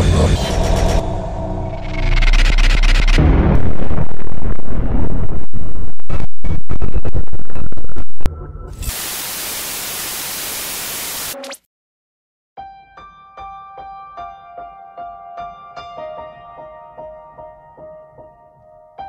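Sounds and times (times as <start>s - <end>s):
deep low boom: 0.0s - 8.6s
distorted glitch noise: 1.8s - 11.6s
tv static hiss: 8.8s - 11.4s.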